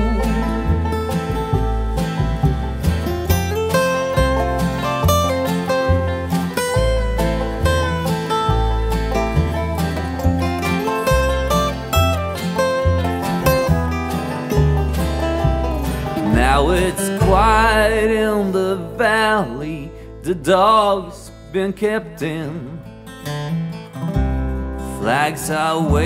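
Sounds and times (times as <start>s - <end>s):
dobro sliding notes: 0.0s - 19.6s
acoustic guitar plucked: 0.0s - 26.0s
banjo: 0.0s - 26.0s
walking upright bass: 0.0s - 26.0s.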